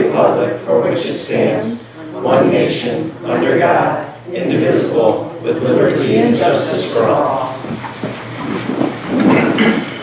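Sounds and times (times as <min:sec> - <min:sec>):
chairs moving and creaking: 0:06.0 - 0:10.0
rustling and shuffling: 0:07.0 - 0:10.0.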